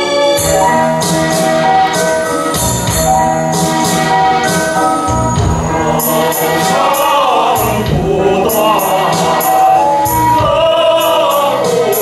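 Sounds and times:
male voices singing work chant: 5.9 - 12.0.

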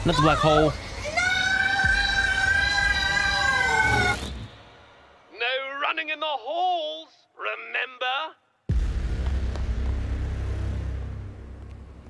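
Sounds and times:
ominous music: 8.7 - 12.0.

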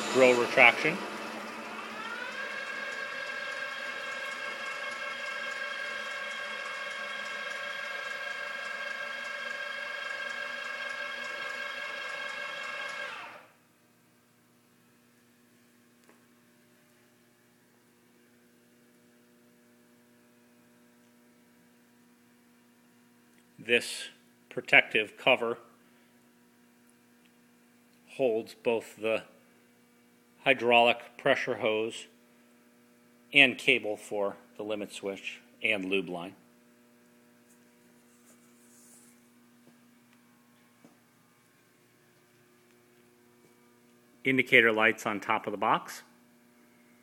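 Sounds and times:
drilling machine motor whining: 0.0 - 13.6.

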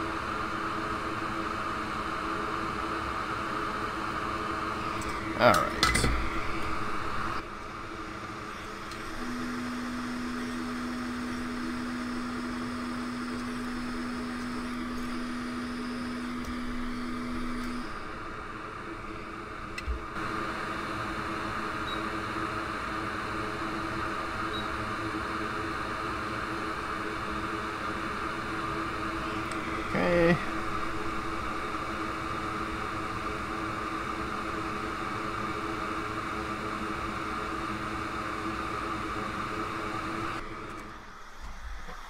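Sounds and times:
low steady hum: 0.0 - 41.9
click: 8.9 - 9.1, 16.4 - 16.6
hot air station blowing hiss: 20.2 - 40.4.

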